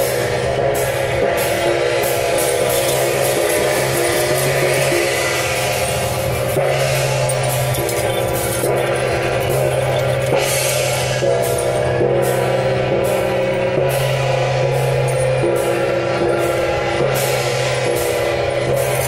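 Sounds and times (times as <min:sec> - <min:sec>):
clashing cymbals: 0:00.0 - 0:19.0
drums: 0:00.0 - 0:19.0
gongs: 0:00.0 - 0:19.0.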